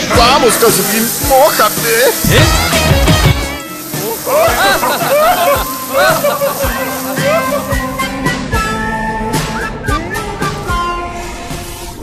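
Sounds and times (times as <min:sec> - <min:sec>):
upbeat theme music: 0:00.0 - 0:11.2
drum hits: 0:02.2 - 0:03.6.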